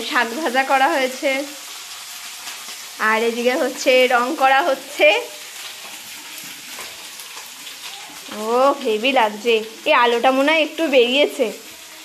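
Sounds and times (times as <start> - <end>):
greens sizzling in oil: 0.0 - 12.0.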